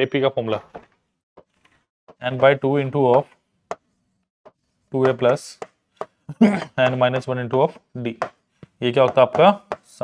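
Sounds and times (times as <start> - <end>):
man speaking: 2.2 - 3.4, 4.9 - 5.7, 6.3 - 10.0.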